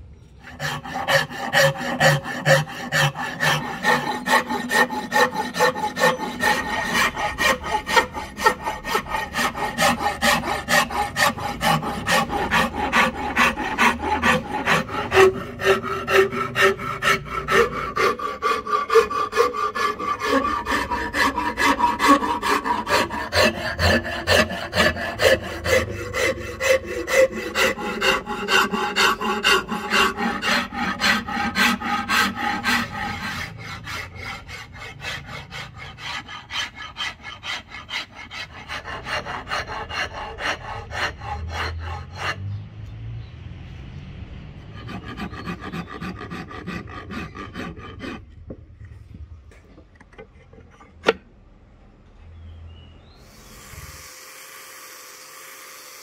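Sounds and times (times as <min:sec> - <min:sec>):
hand file rasping on wood: 0:00.4 - 0:42.6, 0:44.8 - 0:48.6.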